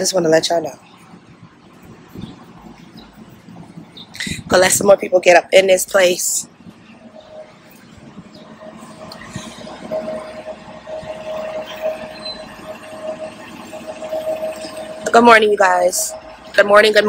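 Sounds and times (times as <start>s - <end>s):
constant mid-pitched whine: 0.0s - 17.0s
mechanical hum: 0.0s - 17.0s.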